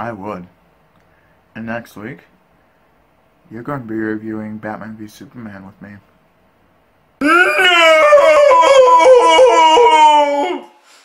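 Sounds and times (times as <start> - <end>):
person howling wail: 7.2 - 10.8.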